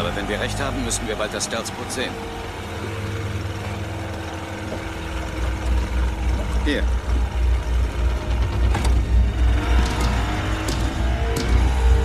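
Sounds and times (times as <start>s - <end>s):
boat motor rumbling: 0.0s - 12.0s
film score music: 0.0s - 12.0s.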